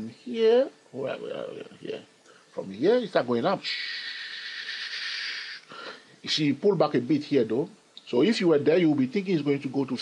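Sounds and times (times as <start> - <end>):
man hissing: 3.6 - 6.1.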